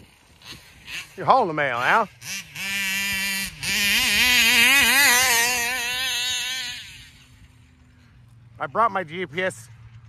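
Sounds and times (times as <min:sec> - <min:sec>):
small two-stroke engine running: 0:00.0 - 0:10.0.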